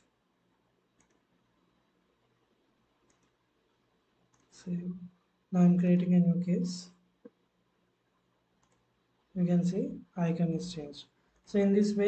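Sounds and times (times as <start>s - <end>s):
computer mouse clicks: 0.9s - 1.4s, 3.0s - 3.4s, 4.2s - 4.6s, 8.6s - 8.9s.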